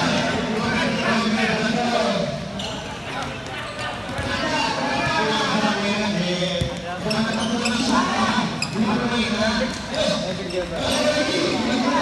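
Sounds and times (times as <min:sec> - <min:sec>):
ball kicked and bouncing: 0:06.5 - 0:06.9.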